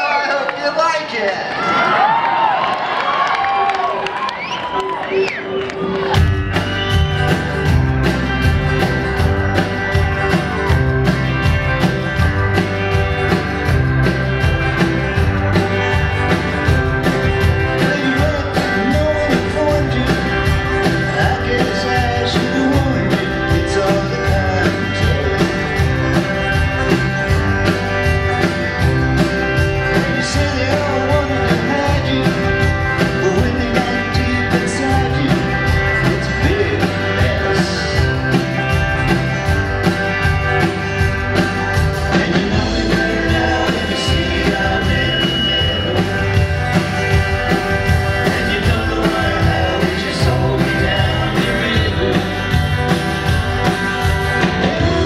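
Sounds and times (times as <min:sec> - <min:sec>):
electric guitars: 0:01.5 - 0:55.0
electric bass: 0:05.9 - 0:55.0
drum kit beat: 0:06.0 - 0:55.0.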